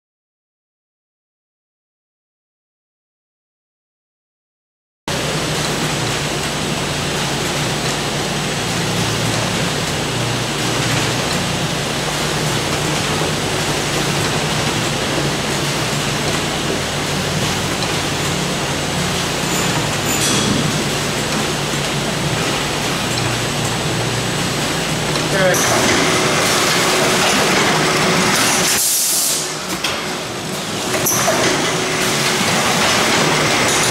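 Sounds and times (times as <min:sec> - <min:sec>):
packaging line machinery hum: 0:05.1 - 0:33.9.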